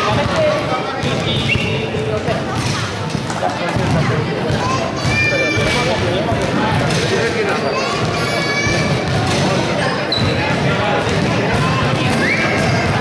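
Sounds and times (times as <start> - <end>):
basketball bouncing on court: 0.0 - 7.3, 8.0 - 13.0
voices calling and chattering: 0.0 - 13.0.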